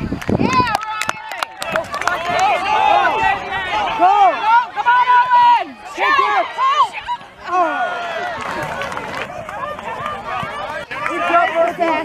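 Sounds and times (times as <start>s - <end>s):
many voices shouting: 0.4s - 12.0s.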